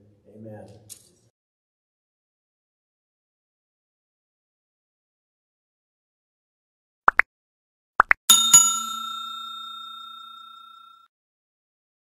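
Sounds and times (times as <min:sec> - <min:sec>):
bell chime ringing: 0:08.3 - 0:11.1.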